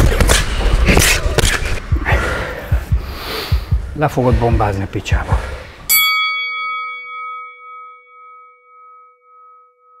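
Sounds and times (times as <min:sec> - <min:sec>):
bell ringing: 0:05.9 - 0:10.0.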